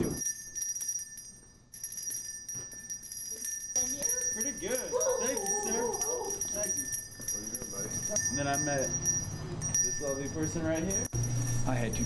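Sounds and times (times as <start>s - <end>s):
handbell ringing: 0.0s - 12.0s.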